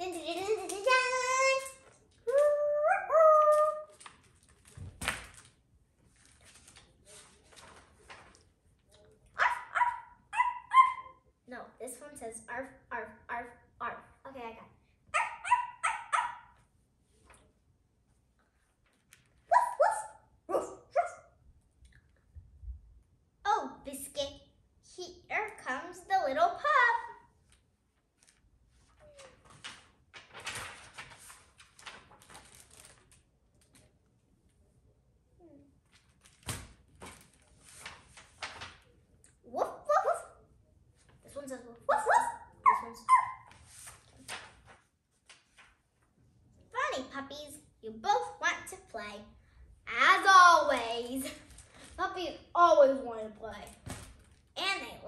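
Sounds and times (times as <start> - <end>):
girl imitating dog barking: 2.3 - 3.9, 19.5 - 21.2, 41.9 - 43.5
short high barks: 9.4 - 11.1, 15.2 - 16.5.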